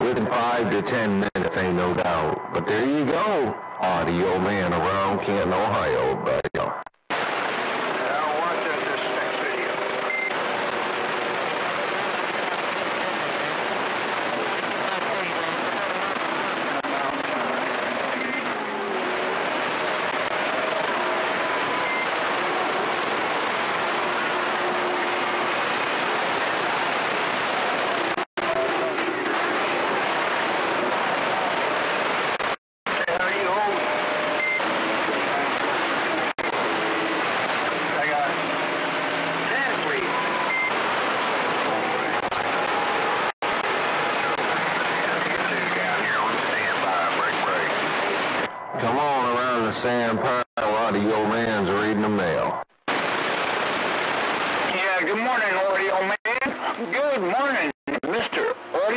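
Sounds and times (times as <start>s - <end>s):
radio static: 0.0s - 58.9s
faint garbled voices: 7.8s - 58.9s.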